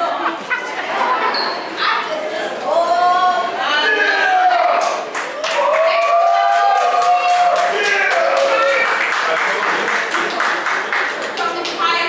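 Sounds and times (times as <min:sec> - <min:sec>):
audience clapping along: 0:04.8 - 0:12.0.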